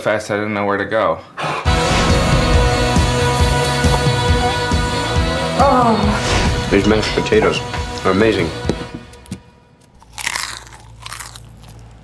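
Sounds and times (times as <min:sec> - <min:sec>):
person chewing and crunching food: 0:09.8 - 0:12.0.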